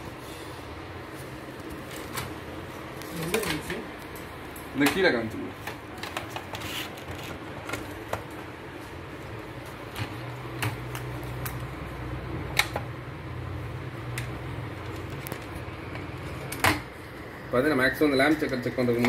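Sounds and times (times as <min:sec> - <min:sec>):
plastic sheets clicking and tapping: 0:04.8 - 0:08.5, 0:09.9 - 0:11.7.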